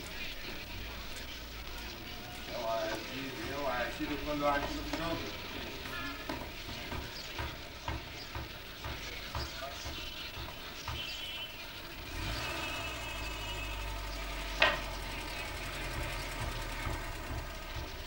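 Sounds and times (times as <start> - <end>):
car engine rumbling: 0.0 - 18.0.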